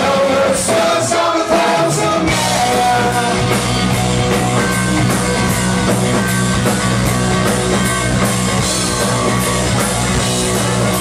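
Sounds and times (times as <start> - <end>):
bass guitar: 0.0 - 11.0
distorted electric guitar: 0.0 - 11.0
drum kit beat: 0.0 - 11.0.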